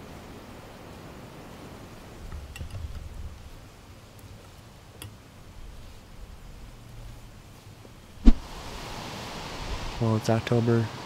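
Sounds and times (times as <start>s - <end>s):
steady outdoor hiss: 0.0s - 11.0s
sharp thump: 8.2s - 8.4s.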